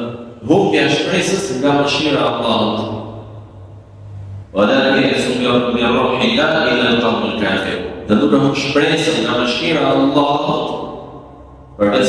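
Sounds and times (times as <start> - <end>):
low hum: 0.0 - 12.0
man chanting: 4.5 - 10.9, 11.8 - 12.0.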